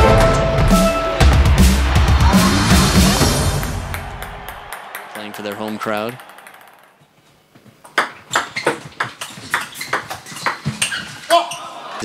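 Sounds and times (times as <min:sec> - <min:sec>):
table tennis ball clicking: 0:04.7 - 0:06.9.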